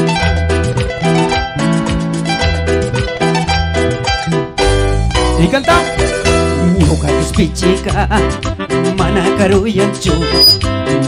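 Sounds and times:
electronic keyboard music: 0.0s - 10.8s.

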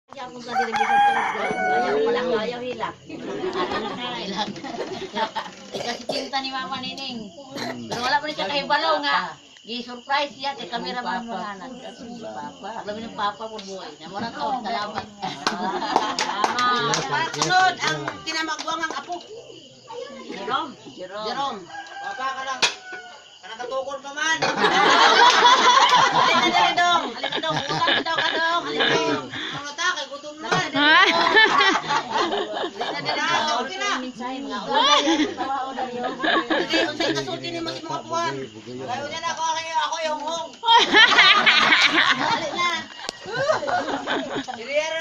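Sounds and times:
people's voices: 0.1s - 45.0s
rooster crowing: 0.4s - 2.5s, 21.5s - 23.6s.

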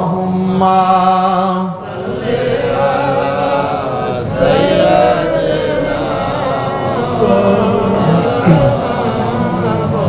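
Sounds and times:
man chanting devotional verses: 2.6s - 10.0s.

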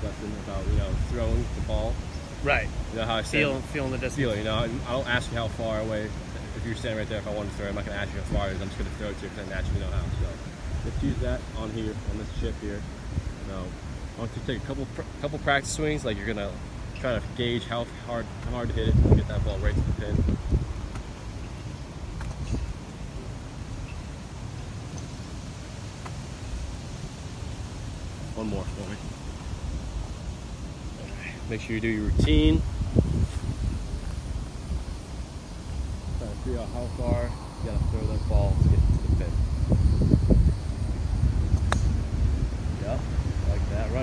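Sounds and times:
wind rumbling on microphone: 0.0s - 44.0s
golf club striking ball: 41.5s - 42.0s.

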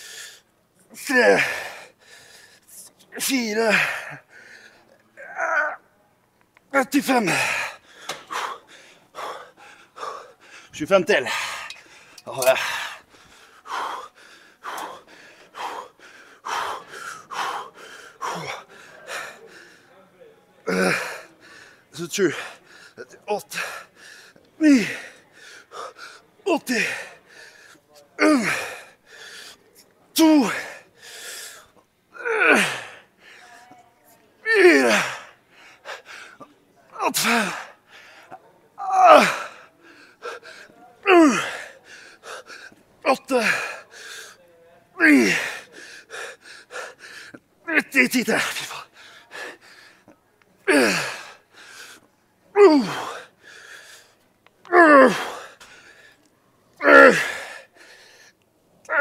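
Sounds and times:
man's strained vocal exhalations: 1.0s - 2.3s, 11.2s - 19.8s, 20.6s - 27.6s, 28.2s - 29.5s, 32.2s - 33.4s, 34.4s - 44.4s, 45.0s - 54.0s, 54.7s - 56.1s, 56.8s - 58.3s
man gasping for breath: 7.8s - 19.8s.

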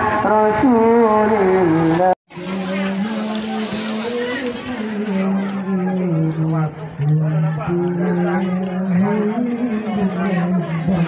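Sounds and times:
faint crowd chatter: 2.3s - 11.0s.

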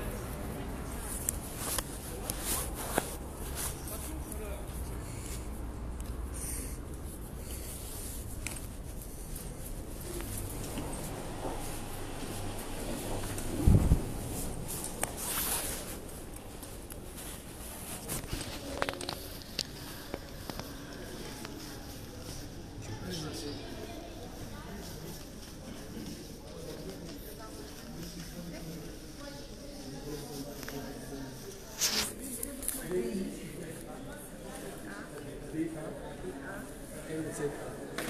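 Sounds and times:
low street rumble: 0.0s - 29.4s.

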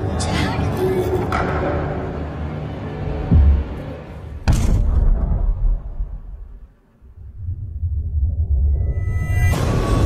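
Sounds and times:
dark ambient music: 0.0s - 10.0s.

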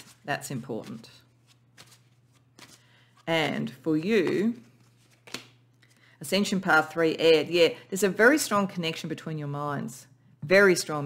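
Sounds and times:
cards rustling: 0.8s - 3.3s, 4.1s - 6.0s.

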